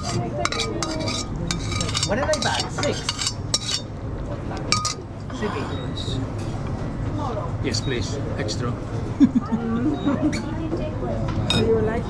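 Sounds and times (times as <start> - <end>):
metal tongs scraping a pan: 0.0 - 3.9, 4.7 - 5.0.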